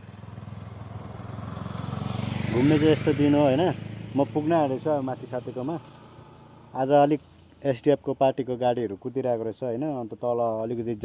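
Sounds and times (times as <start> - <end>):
motorcycle engine running: 0.0 - 7.6.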